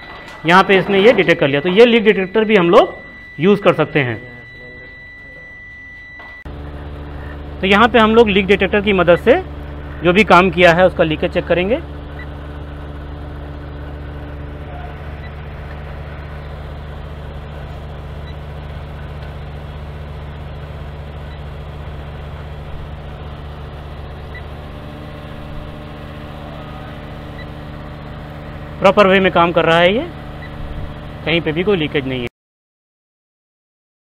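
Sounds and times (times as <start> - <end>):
air conditioner unit humming: 0.0 - 32.3.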